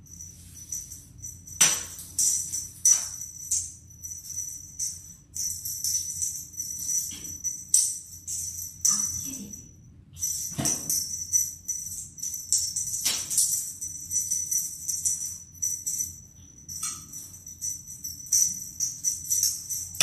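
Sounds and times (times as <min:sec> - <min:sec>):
small jingle bells jingling: 0:00.0 - 0:20.0.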